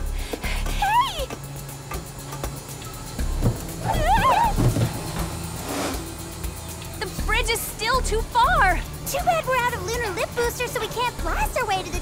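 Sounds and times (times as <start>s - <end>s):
low thuds: 3.2s - 6.3s
warbling cartoon cry: 3.8s - 4.6s
rising whoosh: 5.2s - 6.3s.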